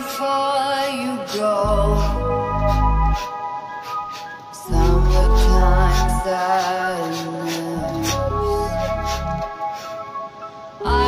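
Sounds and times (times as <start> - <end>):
sustained melodic line: 0.8 - 6.5, 7.8 - 11.0.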